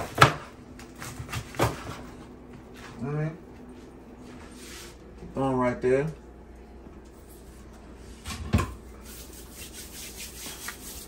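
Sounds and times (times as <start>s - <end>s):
rubbing and handling noises: 9.0s - 11.0s.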